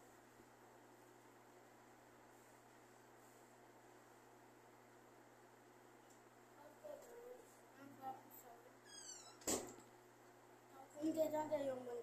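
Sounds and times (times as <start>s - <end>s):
door hinges squeaking: 8.8s - 9.7s
door shutting with a thump: 9.2s - 9.8s.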